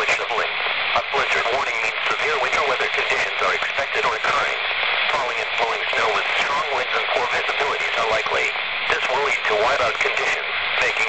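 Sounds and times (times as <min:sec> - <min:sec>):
person speaking over radio speaker: 0:00.0 - 0:11.0
radio hiss: 0:00.0 - 0:11.0.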